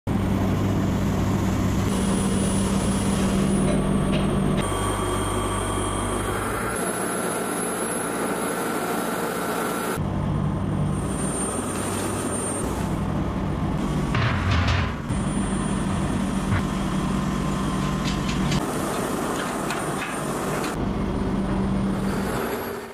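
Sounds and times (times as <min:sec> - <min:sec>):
machinery motor hum: 0:00.1 - 0:22.9.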